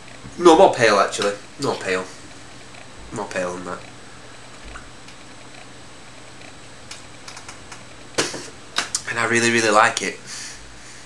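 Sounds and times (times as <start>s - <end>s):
rush of breath: 10.3s - 11.0s.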